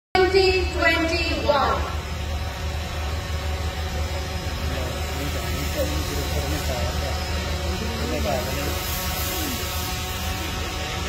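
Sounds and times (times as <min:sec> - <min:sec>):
steady low hum: 0:00.2 - 0:11.0
faint indistinct voices: 0:03.6 - 0:11.0.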